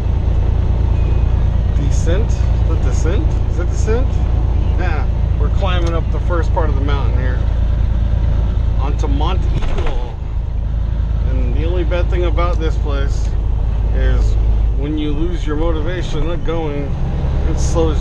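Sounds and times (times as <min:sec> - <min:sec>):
truck engine and tyres droning: 0:00.0 - 0:18.0.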